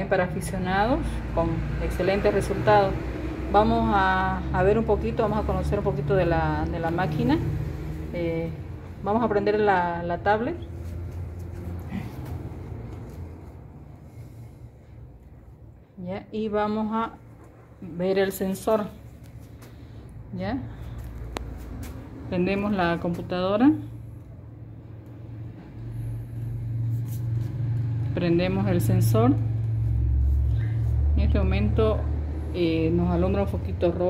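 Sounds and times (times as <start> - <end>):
low background rumble: 0.0 - 34.0.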